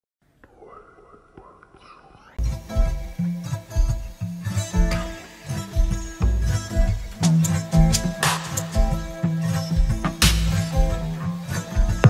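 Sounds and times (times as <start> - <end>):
faint whispering: 0.4 - 2.4.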